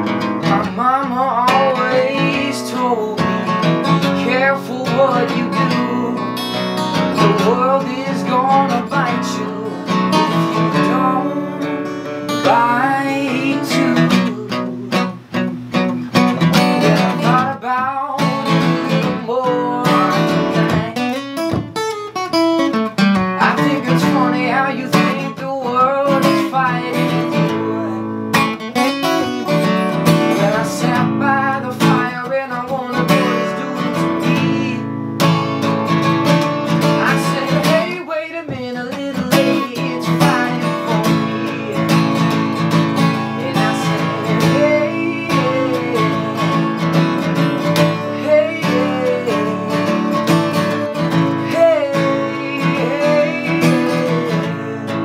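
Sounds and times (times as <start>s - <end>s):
man singing: 0.0s - 22.0s, 22.6s - 55.0s
acoustic guitar strumming: 0.0s - 55.0s.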